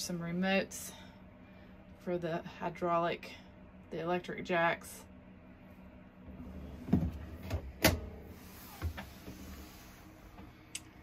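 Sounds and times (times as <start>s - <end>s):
drawer sliding shut: 6.4s - 9.6s.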